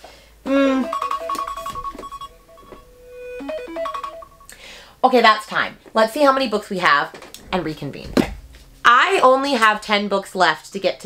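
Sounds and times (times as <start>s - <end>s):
electronic timer alarm melody: 0.8s - 4.6s.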